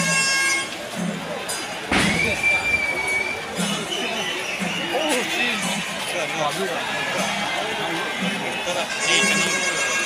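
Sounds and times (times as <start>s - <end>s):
crowd talking and calling out: 0.0s - 10.0s
high reedy wind instrument tone: 1.9s - 5.4s, 8.8s - 10.0s.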